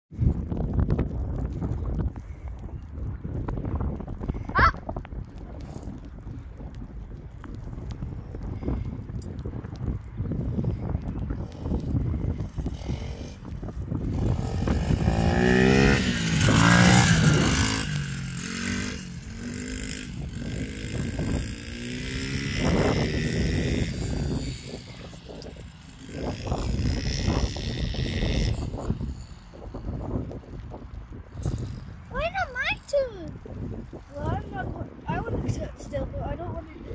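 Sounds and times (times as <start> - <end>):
pit bike engine revving: 11.4 - 29.8.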